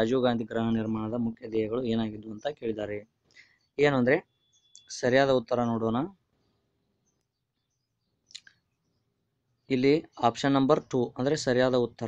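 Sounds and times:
man speaking: 0.0s - 3.1s, 3.8s - 4.3s, 4.9s - 6.2s, 9.7s - 12.0s.

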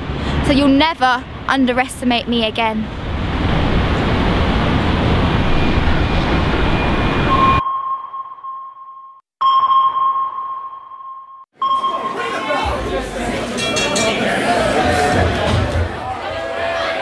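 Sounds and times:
loud rushing noise: 2.9s - 7.5s
electronic sonar ping: 7.3s - 12.2s.

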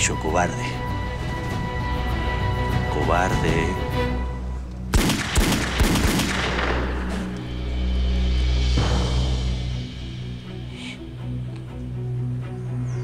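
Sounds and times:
dramatic music with deep drone: 0.0s - 13.0s
handgun shots: 5.0s - 7.2s.

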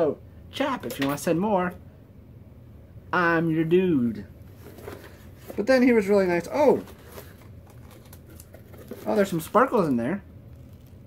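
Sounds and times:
cardboard box being handled: 4.5s - 9.7s.

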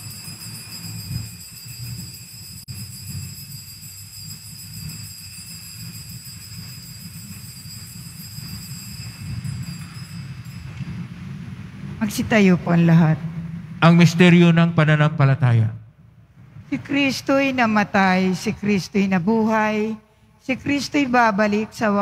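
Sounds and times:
altar bells ringing: 0.0s - 11.6s
low rumble: 0.0s - 19.5s.

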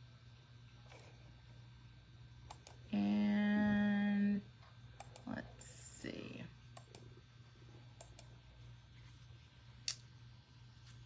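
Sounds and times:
computer mouse clicks: 2.4s - 2.8s, 5.0s - 5.3s, 6.8s - 7.1s, 8.0s - 8.4s.

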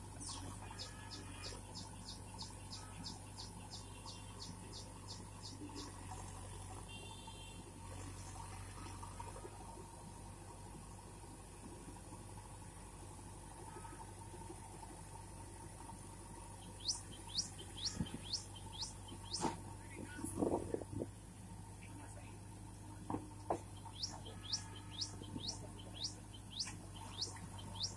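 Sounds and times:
diesel engine humming: 0.0s - 27.9s
bird calling: 0.3s - 6.0s, 16.6s - 19.6s, 23.7s - 27.9s.

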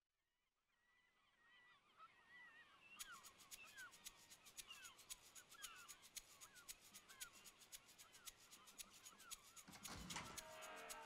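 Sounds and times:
faint bird-like chirping: 0.8s - 11.0s.

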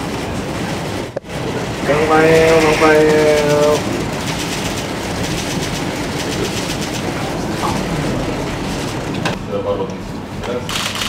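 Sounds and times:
hubbub of voices: 1.2s - 10.9s
camera shutters clicking: 10.7s - 11.0s.

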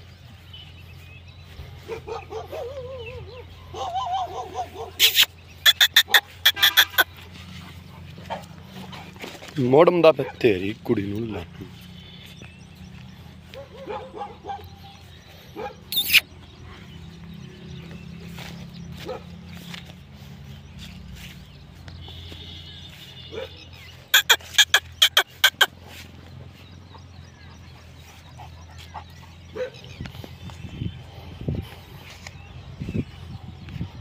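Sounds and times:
dog barking: 1.8s - 7.0s, 11.3s - 11.7s, 13.5s - 15.0s, 15.6s - 16.2s, 19.0s - 19.4s, 23.2s - 25.7s, 29.5s - 29.9s.

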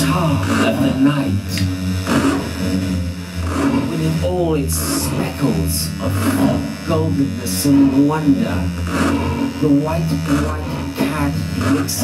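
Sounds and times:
low sustained tones: 0.0s - 12.0s
steady electric hum: 0.0s - 12.0s
warbling voice-like sweep: 0.0s - 12.0s.

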